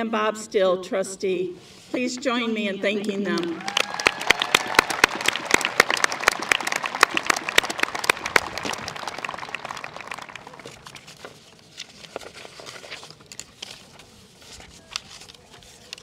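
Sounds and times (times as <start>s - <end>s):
audience applauding: 3.5s - 11.0s.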